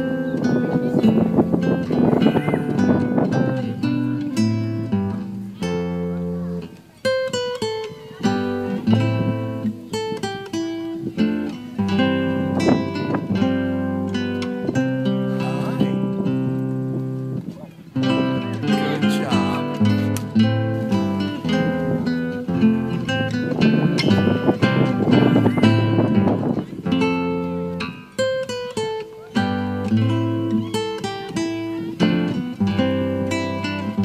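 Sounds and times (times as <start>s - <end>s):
acoustic guitar music: 0.0s - 34.0s.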